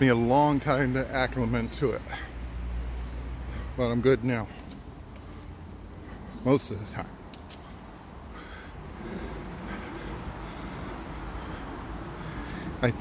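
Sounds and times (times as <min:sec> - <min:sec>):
insects singing high-pitched tone: 0:00.0 - 0:13.0.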